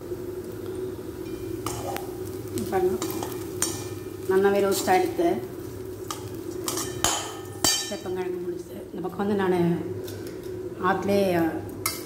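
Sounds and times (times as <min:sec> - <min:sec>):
frying sizzle: 0:00.0 - 0:12.0.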